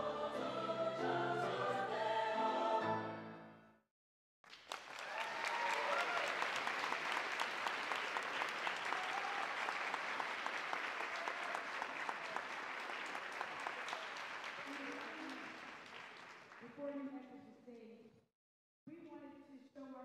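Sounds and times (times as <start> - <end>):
audience applauding: 4.5 - 16.8.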